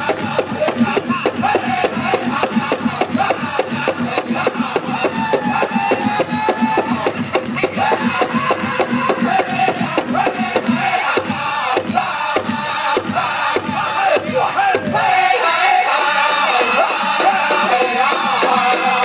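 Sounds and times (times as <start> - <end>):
big drum fast steady beat: 0.0 - 19.0
men singing: 0.0 - 19.0.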